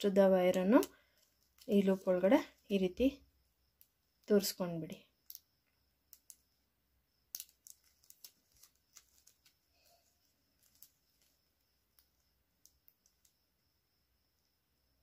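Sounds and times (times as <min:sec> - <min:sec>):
plastic wire clicking and crinkling: 0:00.5 - 0:02.0, 0:05.2 - 0:05.5, 0:06.1 - 0:06.4, 0:07.3 - 0:13.4.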